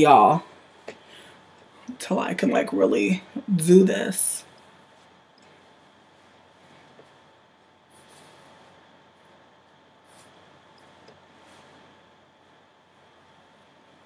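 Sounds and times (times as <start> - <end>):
faint steady hum: 0.0 - 14.0
rustling of hands on wig: 4.8 - 12.1.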